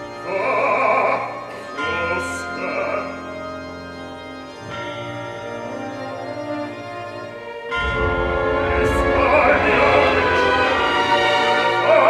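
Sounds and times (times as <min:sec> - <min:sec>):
symphony orchestra playing: 0:00.0 - 0:12.0
operatic voices singing: 0:07.8 - 0:12.0.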